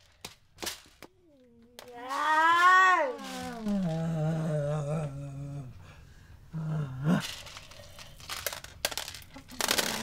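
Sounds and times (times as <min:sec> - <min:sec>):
sliding vocal cry: 0:01.8 - 0:05.8
low hummed voice: 0:03.0 - 0:07.3.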